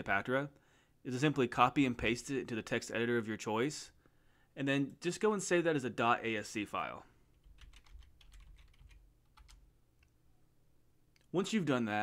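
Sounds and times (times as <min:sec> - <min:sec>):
faint keyboard typing: 0:07.3 - 0:10.1.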